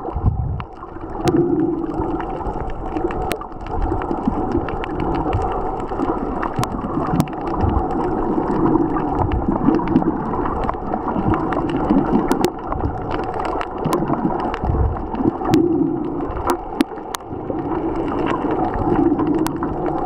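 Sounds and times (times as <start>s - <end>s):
muffled underwater sloshing: 0.0s - 20.0s.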